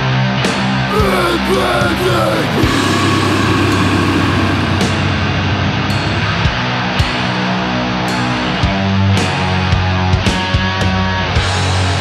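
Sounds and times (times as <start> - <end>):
distorted electric guitars: 0.0 - 12.0
drums: 0.0 - 12.0.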